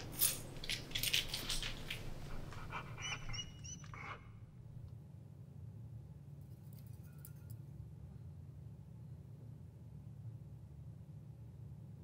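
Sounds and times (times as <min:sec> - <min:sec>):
dog breathy noises: 0:00.8 - 0:04.5.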